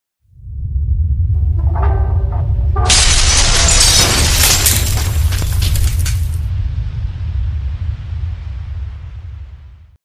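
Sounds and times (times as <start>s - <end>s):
deep steady rumble: 0.2s - 10.0s
loud hissing crash: 2.9s - 9.9s.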